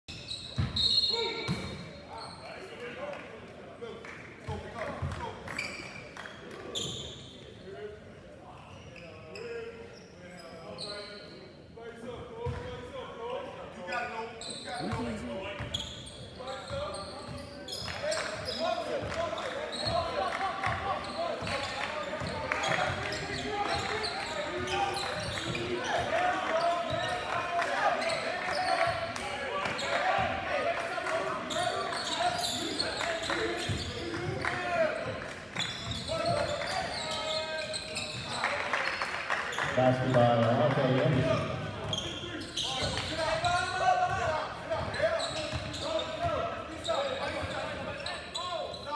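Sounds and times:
many voices: 1.1 - 48.9.

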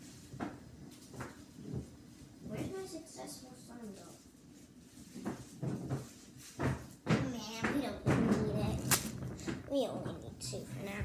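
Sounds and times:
knocks: 5.2 - 11.0.

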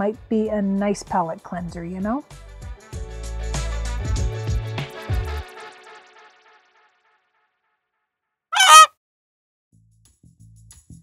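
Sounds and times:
comic honk sound effect: 8.6 - 8.9.

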